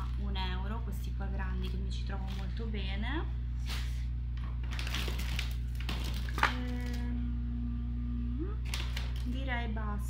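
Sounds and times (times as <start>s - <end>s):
low electrical hum: 0.0s - 10.0s
items being handled: 1.5s - 3.0s, 3.6s - 7.1s
woman humming: 6.4s - 8.7s.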